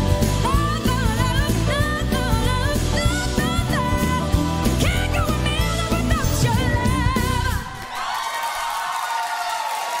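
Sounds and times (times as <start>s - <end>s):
woman singing with live band: 0.4s - 7.8s
audience applause and cheering: 7.0s - 10.0s.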